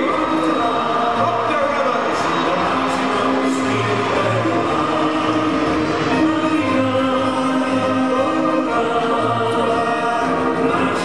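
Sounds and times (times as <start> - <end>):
brass band music: 0.0 - 11.0
group of voices singing: 0.0 - 11.0.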